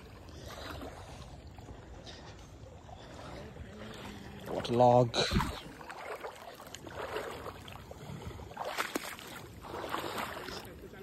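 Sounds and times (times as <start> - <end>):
wading through water: 0.0 - 11.0
water sloshing and splashing: 0.0 - 11.0.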